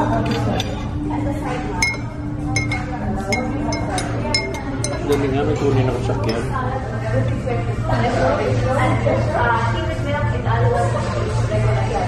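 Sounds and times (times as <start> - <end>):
voices: 0.0 - 12.0
teaspoon clinking in ceramic mug: 1.8 - 5.3.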